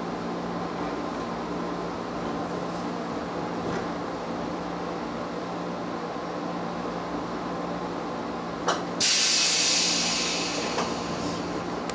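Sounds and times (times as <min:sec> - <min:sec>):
compressed air hissing from train: 0:09.0 - 0:11.6.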